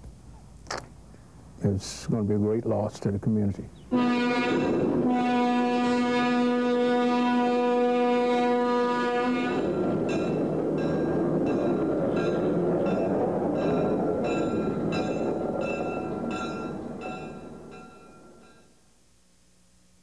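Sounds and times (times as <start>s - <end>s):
locomotive horn: 3.9s - 10.1s
bell ringing: 10.1s - 18.7s.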